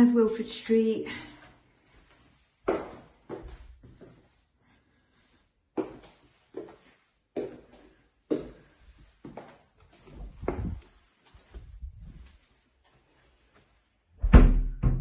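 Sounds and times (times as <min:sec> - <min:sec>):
footsteps on hard floor: 0:01.8 - 0:04.4, 0:05.8 - 0:13.8.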